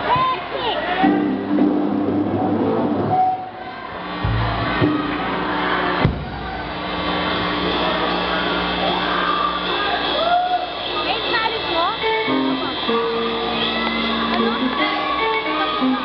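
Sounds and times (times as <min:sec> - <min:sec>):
crowd murmur: 0:00.0 - 0:16.0
electric guitars holding notes: 0:01.0 - 0:10.2, 0:10.8 - 0:16.0
sharp drum hit: 0:04.2 - 0:07.5.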